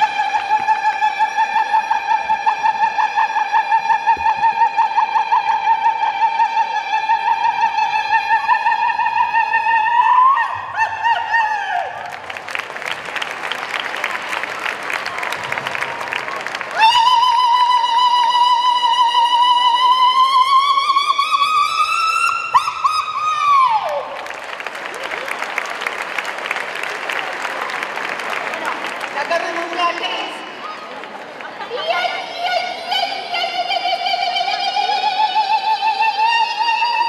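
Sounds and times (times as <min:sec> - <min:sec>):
crowd applauding and cheering: 0:11.8 - 0:18.3, 0:23.1 - 0:32.4
long high-pitched shout: 0:16.7 - 0:24.2.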